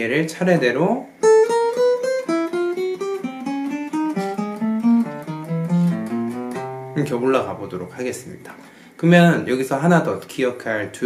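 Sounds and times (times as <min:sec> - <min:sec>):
acoustic guitar single notes: 0:01.2 - 0:08.0.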